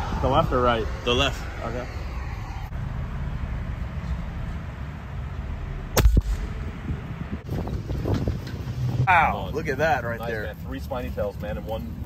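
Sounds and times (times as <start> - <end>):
gunshot cracks: 6.0 - 6.5.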